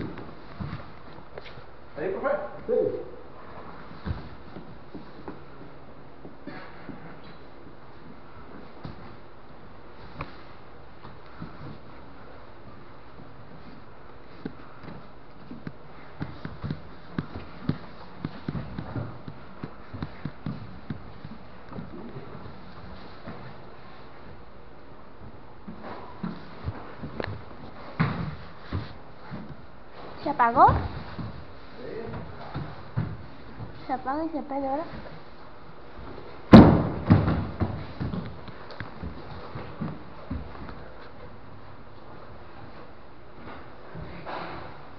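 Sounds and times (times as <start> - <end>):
scuffles on a mat: 0.0 - 1.8, 3.4 - 5.7, 9.9 - 24.5, 25.2 - 35.4
bodies thudding on a mat: 25.7 - 33.8, 36.0 - 41.0
dull thumps on foam mats: 36.5 - 38.4.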